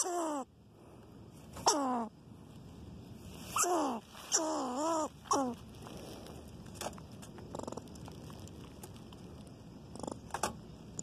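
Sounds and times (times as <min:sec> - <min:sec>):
rodent buzzing chatter: 0:00.0 - 0:00.5, 0:03.5 - 0:05.6, 0:07.4 - 0:08.1, 0:09.9 - 0:10.4.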